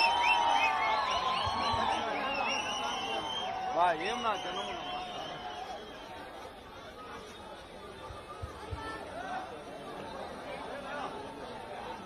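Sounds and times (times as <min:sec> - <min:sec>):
large crowd chattering: 0:00.0 - 0:12.0.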